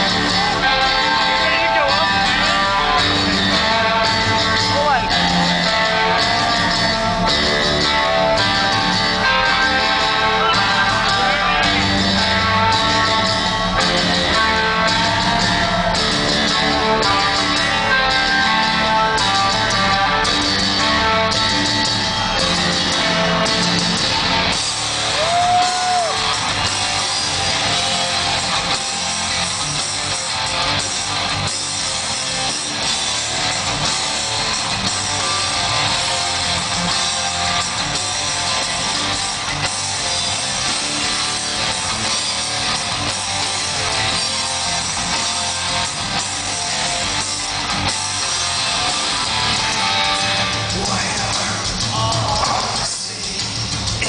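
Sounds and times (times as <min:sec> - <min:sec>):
audience call: 0:00.0 - 0:54.0
heavy rock band playing live: 0:00.0 - 0:54.0.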